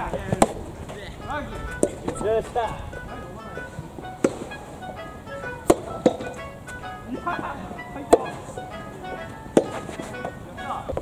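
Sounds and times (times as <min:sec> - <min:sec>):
background music: 0:00.0 - 0:11.0
tennis ball hitting racket and court: 0:00.0 - 0:11.0.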